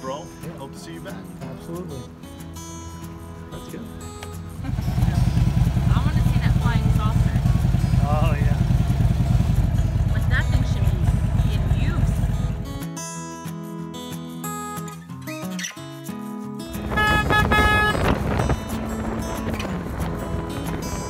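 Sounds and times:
motorcycle engine running: 0:04.4 - 0:12.8, 0:16.8 - 0:21.0.

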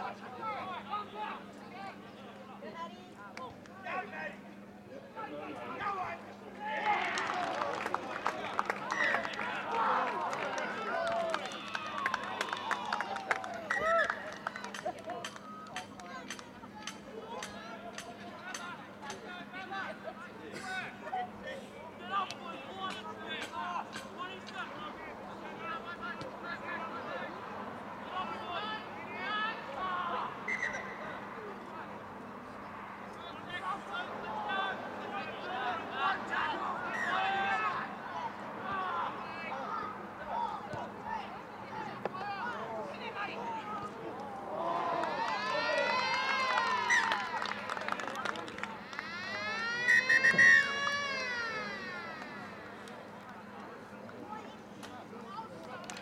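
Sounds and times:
outdoor background noise: 0:00.0 - 0:56.0
distant players shouting: 0:22.0 - 0:31.8, 0:32.8 - 0:53.2.

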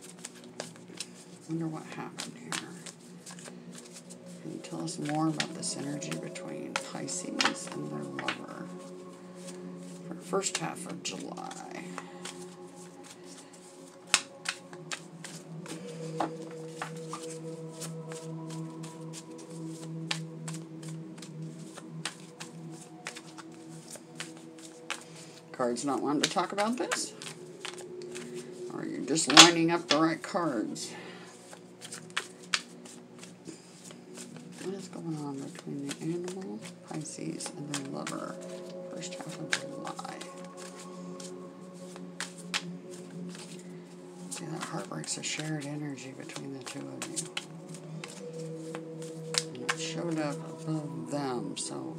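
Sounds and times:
cards being shuffled: 0:00.0 - 0:09.6, 0:10.2 - 0:30.2, 0:31.3 - 0:50.9
soft background music: 0:00.0 - 0:51.9
card flicks and snaps: 0:14.1 - 0:15.0, 0:32.2 - 0:32.7.

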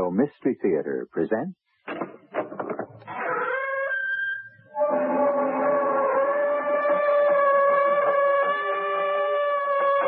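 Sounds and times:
door creaking open: 0:01.9 - 0:10.0.

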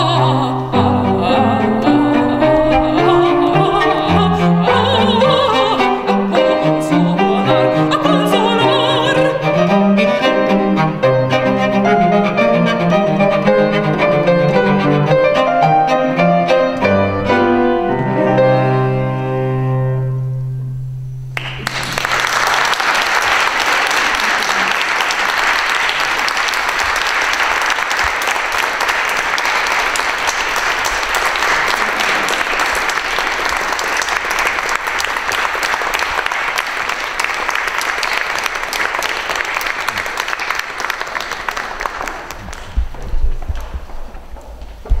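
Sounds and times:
audience applauding: 0:21.3 - 0:44.1.

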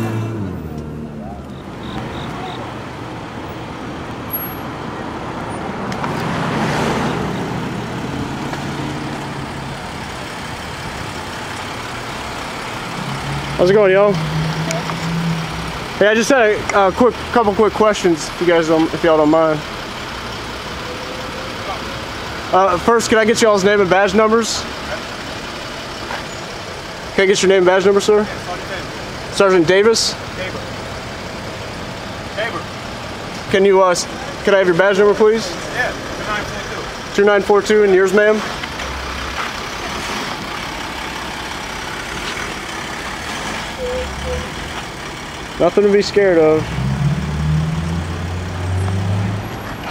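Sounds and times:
city street noise: 0:00.0 - 0:49.9
vehicle engine idling: 0:07.3 - 0:46.6.

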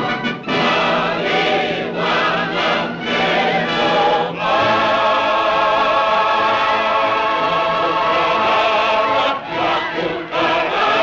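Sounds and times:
chorus with orchestra: 0:00.0 - 0:11.0.

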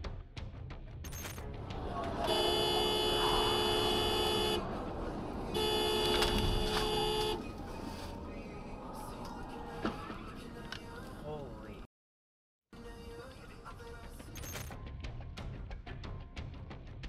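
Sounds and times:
road noise: 0:01.4 - 0:11.9
car horn blasts: 0:02.1 - 0:04.8, 0:05.5 - 0:07.6.

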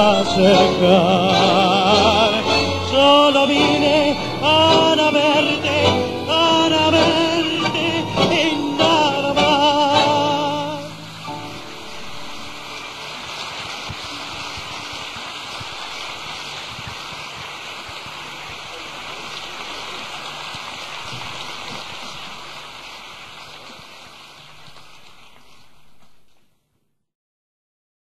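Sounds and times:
audience applauding: 0:00.0 - 0:25.6.

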